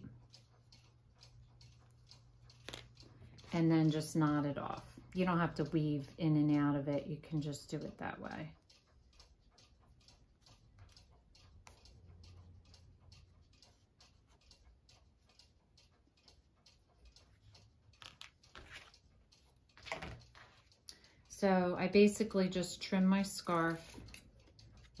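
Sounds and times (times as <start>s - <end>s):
faint rapid ticking clicks: 0.0s - 25.0s
soft handling sounds: 17.2s - 20.9s.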